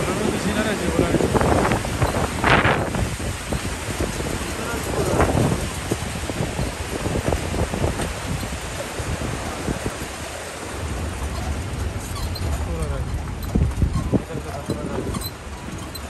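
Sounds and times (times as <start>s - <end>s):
rushing river water: 0.0s - 16.0s
wind on microphone: 0.0s - 16.0s
people's voices: 4.1s - 5.7s.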